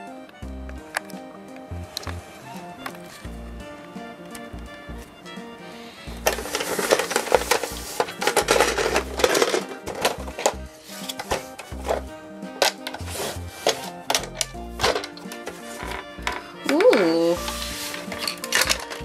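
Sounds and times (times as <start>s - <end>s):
background music: 0.0s - 19.0s
plastic case clicks and rattles: 6.2s - 19.0s.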